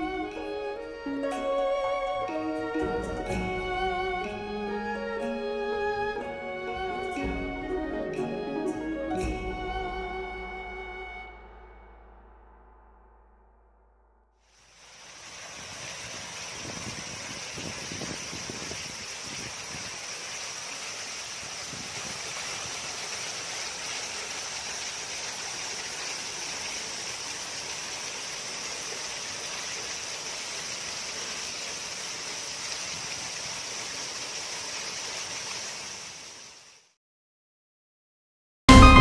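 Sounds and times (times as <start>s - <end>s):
waterfall pouring and splashing: 0.0s - 11.5s, 14.4s - 37.0s.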